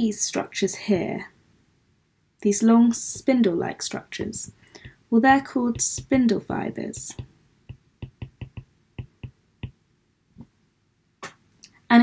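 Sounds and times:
stylus tapping on tablet screen: 4.2 - 9.8.

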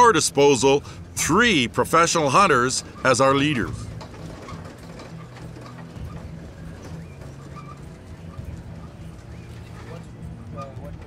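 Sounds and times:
truck engine humming: 0.0 - 11.0.

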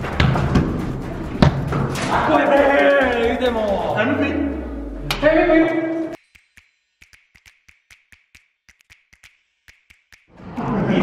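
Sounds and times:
man shouting: 2.2 - 6.1.

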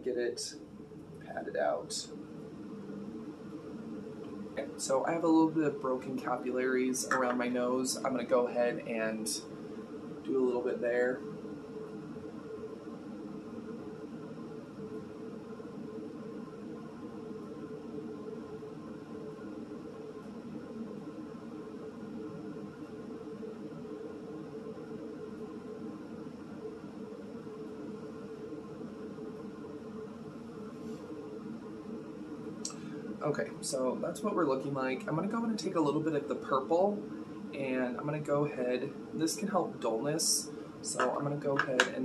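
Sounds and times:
steady room hum: 0.0 - 42.0.

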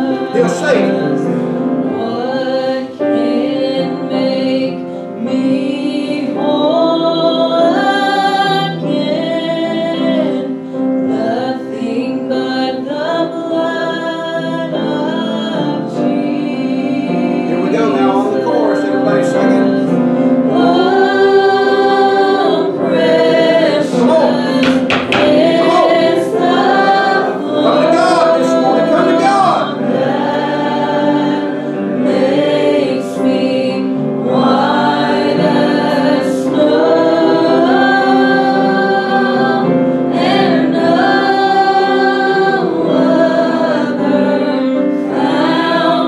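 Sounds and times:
congregation singing a hymn: 0.0 - 46.0.

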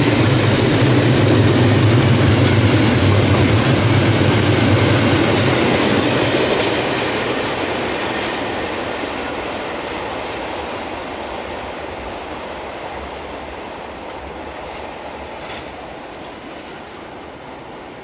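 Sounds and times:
train wheel clatter: 0.0 - 16.8
freight train rumbling past: 0.0 - 18.0.

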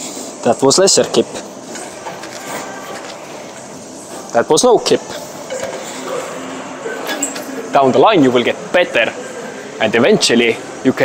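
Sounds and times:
gym hall background noise: 0.0 - 11.0.

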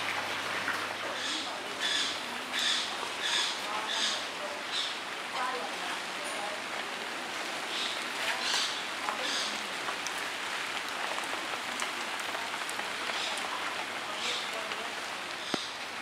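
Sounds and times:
faint voices: 0.6 - 10.1, 10.8 - 16.0.

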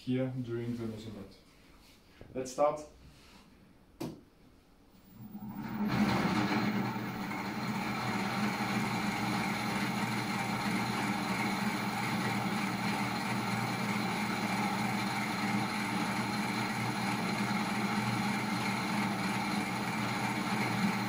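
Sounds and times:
electric motor mechanical hum: 5.0 - 21.0.

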